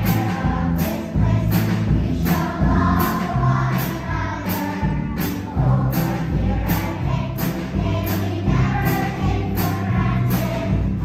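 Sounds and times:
acoustic guitar: 0:00.0 - 0:11.0
children's choir singing: 0:00.0 - 0:11.0.

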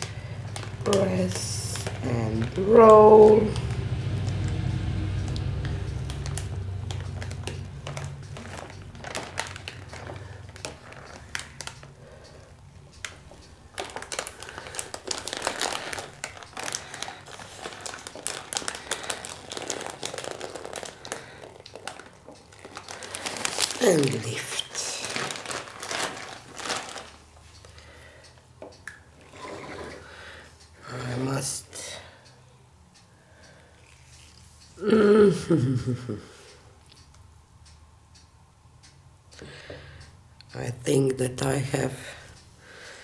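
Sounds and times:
plastic bag crinkling: 0:00.0 - 0:04.5, 0:05.3 - 0:28.0.

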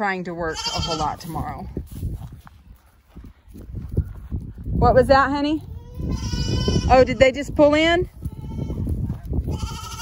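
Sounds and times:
goat bleating: 0:00.4 - 0:01.4, 0:05.7 - 0:07.2, 0:08.2 - 0:10.0.

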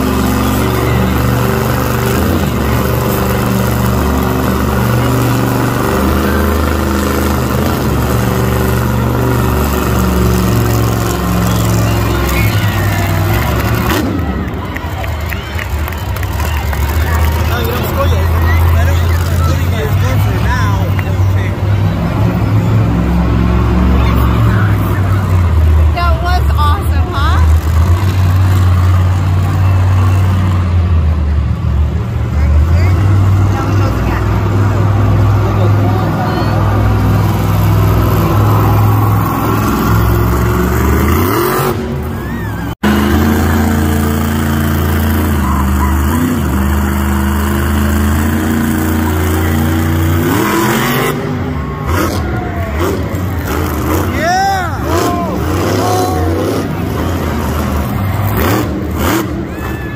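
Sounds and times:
monster truck engine revving: 0:00.0 - 0:59.9.

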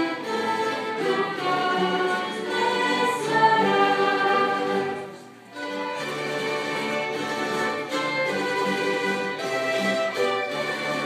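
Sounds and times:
voices singing sustained notes: 0:00.0 - 0:05.4
orchestra bowed strings playing: 0:00.0 - 0:11.0.

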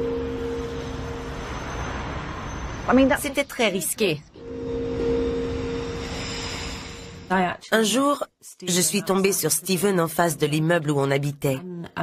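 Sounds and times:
steady rushing drone: 0:04.4 - 0:07.4.

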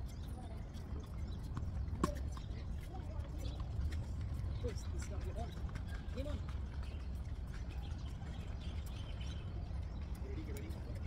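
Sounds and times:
ball bouncing on hard court: 0:01.5 - 0:02.4.

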